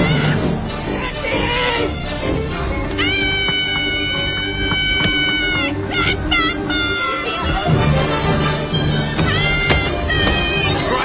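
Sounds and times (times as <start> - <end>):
music: 0.0 - 11.0
woman shrieking: 3.0 - 7.4.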